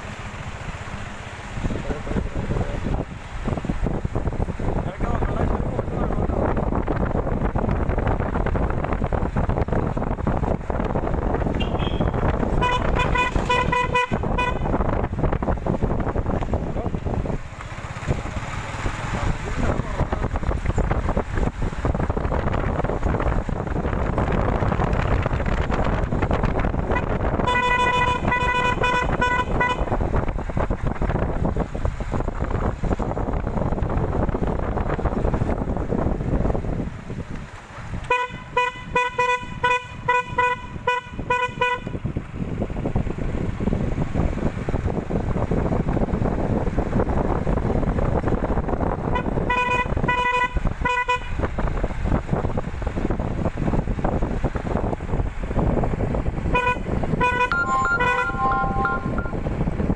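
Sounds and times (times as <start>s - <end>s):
moving vehicle rumble and wind: 0.0s - 59.9s
vehicle horn rapid beeps: 11.5s - 14.8s, 26.9s - 29.9s, 38.1s - 42.0s, 49.2s - 51.3s, 56.5s - 59.5s.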